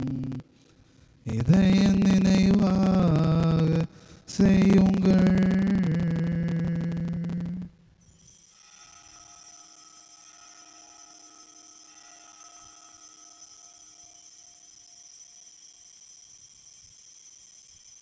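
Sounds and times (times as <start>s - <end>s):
high shimmering bells ringing: 8.0s - 18.0s.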